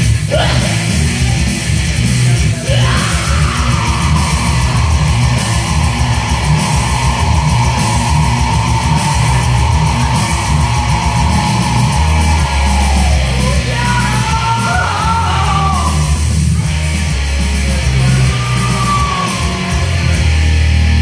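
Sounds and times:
heavy metal electric guitar: 0:00.0 - 0:21.0
man screaming high note: 0:02.6 - 0:04.7, 0:12.8 - 0:16.2, 0:18.0 - 0:20.0.

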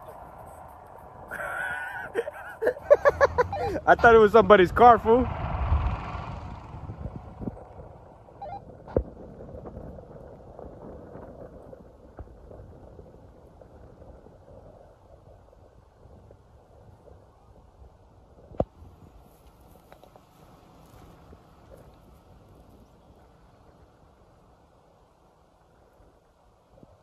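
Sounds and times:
distant truck engine rumble: 0:00.0 - 0:26.1.

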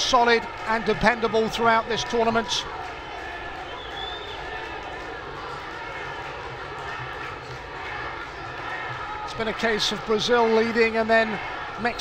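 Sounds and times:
stadium crowd din: 0:00.0 - 0:12.0.

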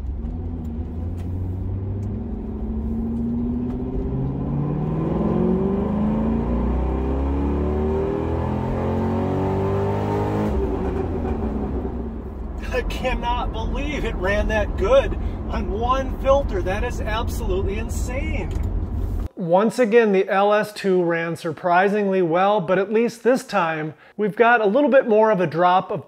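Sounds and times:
car engine at full throttle: 0:00.0 - 0:19.3.

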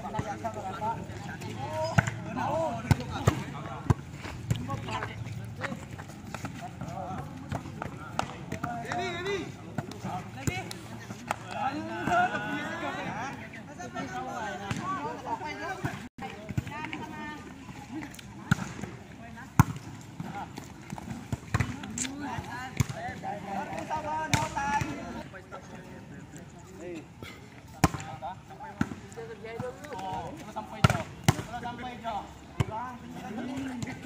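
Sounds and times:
players calling and chatting: 0:00.0 - 0:34.0.

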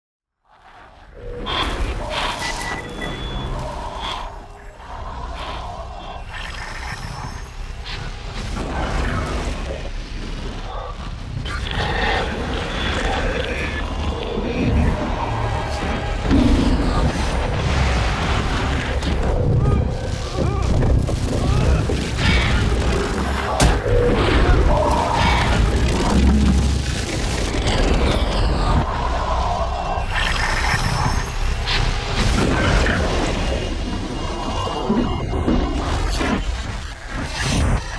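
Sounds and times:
deep rumbling drone: 0:00.5 - 0:37.9
electronic crackling: 0:16.9 - 0:28.9.

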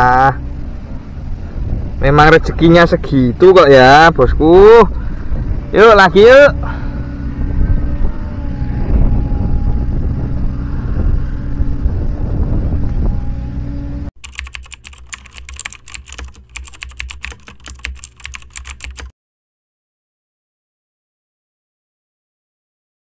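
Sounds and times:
low outdoor rumble: 0:00.0 - 0:19.0
keyboard typing clicks: 0:14.2 - 0:19.1.

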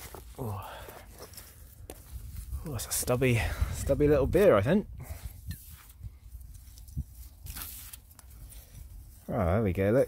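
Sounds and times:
gloved hand scraping soil: 0:00.0 - 0:10.0
soil crunching and rustling: 0:00.0 - 0:10.0.

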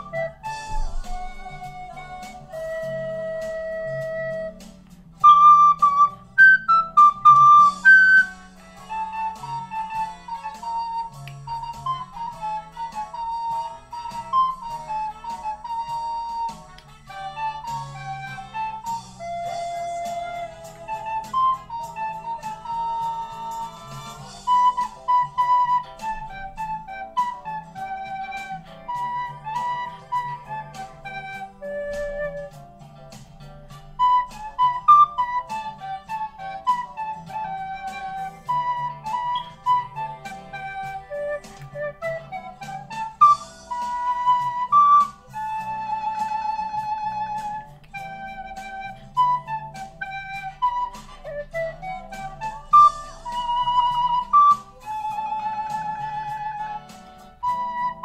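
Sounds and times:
recorder playing a melody: 0:00.0 - 0:33.0, 0:33.6 - 0:58.0
quiet low accompaniment: 0:00.0 - 0:58.0.

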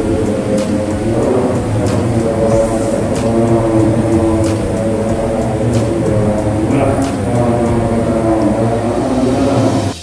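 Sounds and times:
person chanting a prayer: 0:01.0 - 0:10.0.

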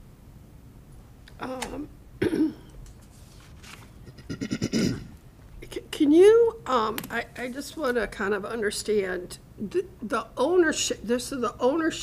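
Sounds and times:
person clearing throat: 0:02.2 - 0:02.7, 0:04.1 - 0:05.2.

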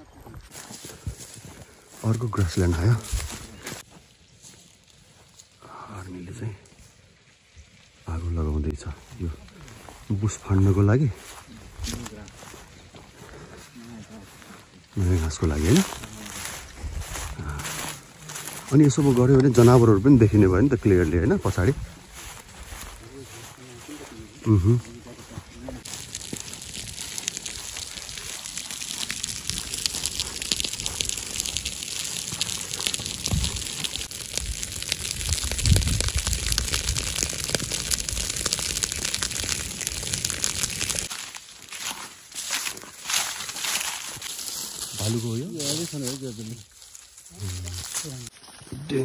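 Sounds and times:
dry grass burning crackle: 0:00.0 - 0:49.0
person speaking: 0:13.8 - 0:16.6, 0:17.2 - 0:21.8, 0:22.9 - 0:26.1, 0:47.3 - 0:49.0.

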